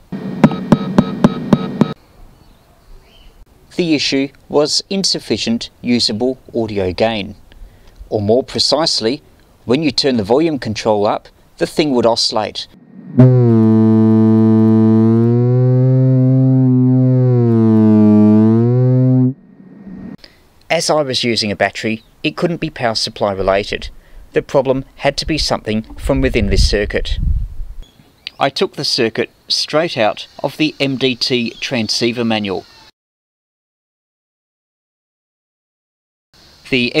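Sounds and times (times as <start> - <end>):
amplifier buzzing through loudspeaker: 12.8 - 20.2.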